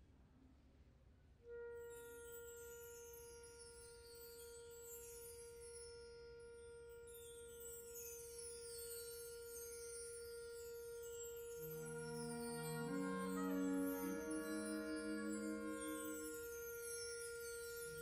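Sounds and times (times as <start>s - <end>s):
faint bright shimmer: 1.8s - 18.0s
wind band holding high note: 11.6s - 18.0s.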